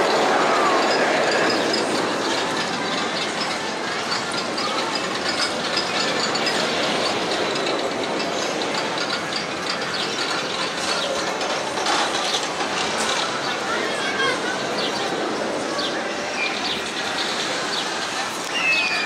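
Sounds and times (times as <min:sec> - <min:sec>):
roller coaster train clattering: 0:00.0 - 0:19.0.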